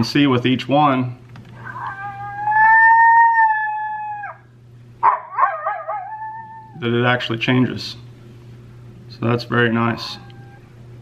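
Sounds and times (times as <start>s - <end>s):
electronic animal calls from speaker: 1.6s - 4.4s.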